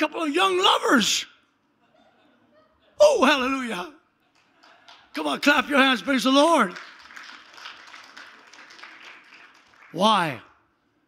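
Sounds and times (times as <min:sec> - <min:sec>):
distant crowd applauding: 0:04.4 - 0:10.4.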